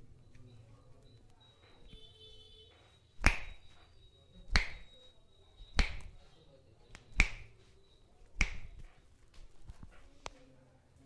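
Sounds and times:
sharp finger joint snaps: 0:03.2 - 0:03.6, 0:04.5 - 0:04.9, 0:05.7 - 0:06.2, 0:06.9 - 0:07.5, 0:08.4 - 0:08.7.

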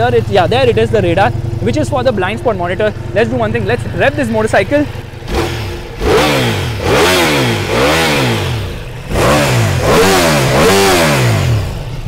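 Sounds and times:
motorcycle engine revving: 0:00.0 - 0:12.0.

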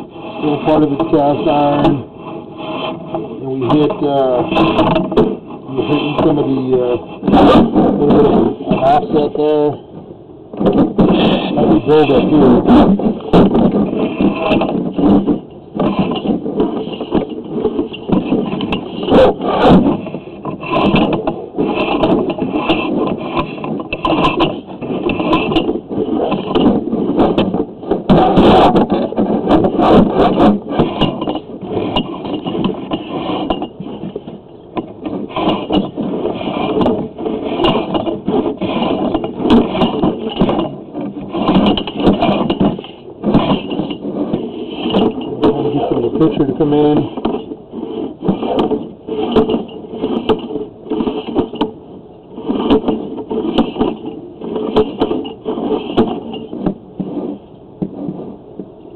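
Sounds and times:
cable scraping and rattling in pipe: 0:00.0 - 0:58.9.

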